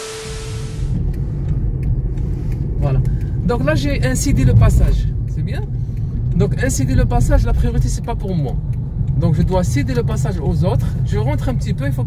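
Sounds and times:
hiss: 0.0s - 1.0s
faint steady tone: 0.0s - 1.2s
car engine and road rumble: 0.0s - 12.0s.

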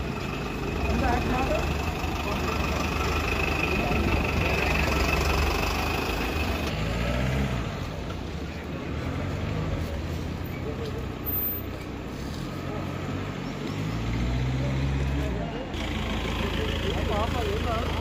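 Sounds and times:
voices: 0.0s - 6.7s, 7.8s - 18.0s
engine idling: 0.0s - 6.8s, 15.7s - 18.0s
street traffic: 0.0s - 18.0s.

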